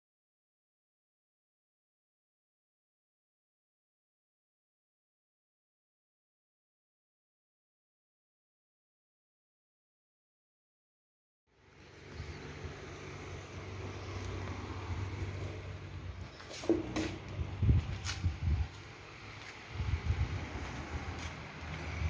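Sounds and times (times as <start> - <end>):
low steady hum: 11.5 - 22.0.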